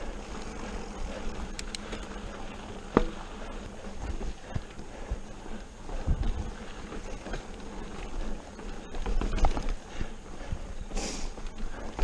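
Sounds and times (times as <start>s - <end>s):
mountain bike rattling over rock: 1.4s - 10.2s
wind on microphone: 5.9s - 7.3s.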